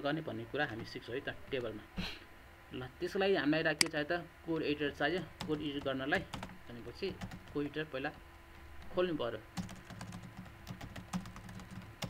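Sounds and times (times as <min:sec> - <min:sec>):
keyboard typing: 0:05.4 - 0:07.7, 0:09.6 - 0:12.0.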